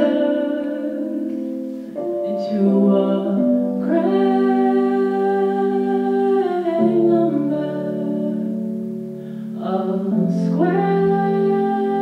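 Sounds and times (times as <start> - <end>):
piano: 0.0 - 12.0
woman singing a long note: 2.2 - 8.9, 9.6 - 12.0.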